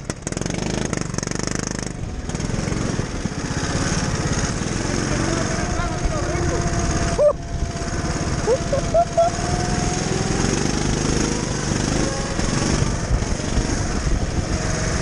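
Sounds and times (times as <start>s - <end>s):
go-kart engine running: 0.0s - 15.0s.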